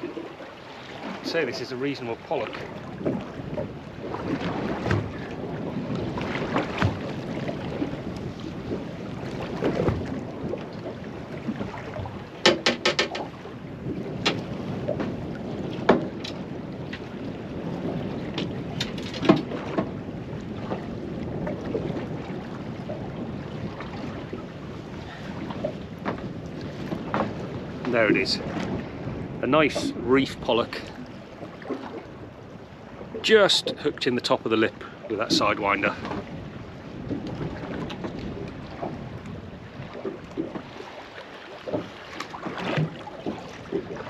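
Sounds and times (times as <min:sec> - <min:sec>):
wind on microphone: 0:00.0 - 0:33.9, 0:34.7 - 0:41.0
water lapping against boat hull: 0:00.0 - 0:44.0.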